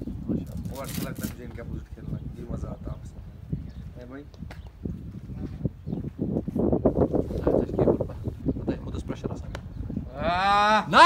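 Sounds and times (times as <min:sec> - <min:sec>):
man's long drawn-out shout: 0:10.1 - 0:11.0.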